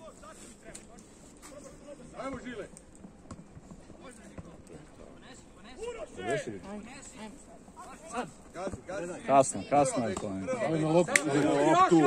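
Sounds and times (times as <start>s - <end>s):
faint players shouting: 5.6s - 12.0s.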